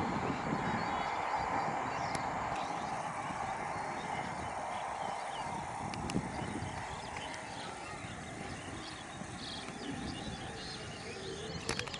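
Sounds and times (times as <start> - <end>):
train wheels on rails: 0.0 - 11.9.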